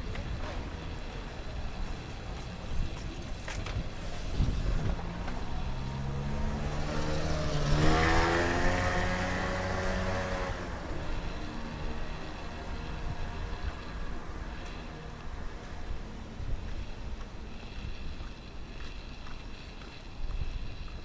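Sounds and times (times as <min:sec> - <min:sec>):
motor scooter passing by: 0:03.7 - 0:19.9.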